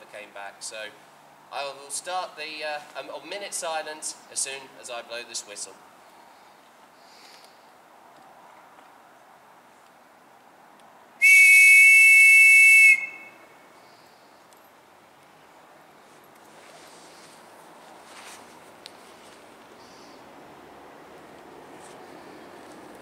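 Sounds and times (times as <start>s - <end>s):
shrill whistle blast: 11.2s - 13.4s.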